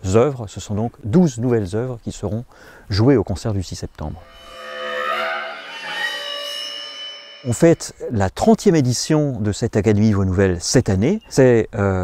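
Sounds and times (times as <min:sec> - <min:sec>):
high steady tone: 0:04.0 - 0:08.1
chamber ensemble sustained tones: 0:04.1 - 0:08.1.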